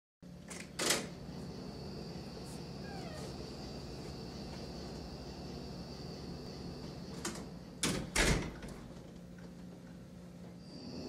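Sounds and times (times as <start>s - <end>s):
low room hum: 0.2s - 11.0s
thin high whine: 1.0s - 7.9s.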